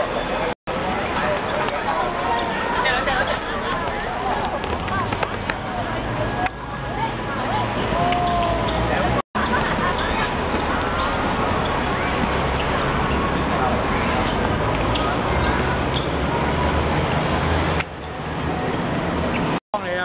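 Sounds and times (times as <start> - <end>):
steady noisy background: 0.0 - 20.0
distant players shouting: 1.4 - 9.2.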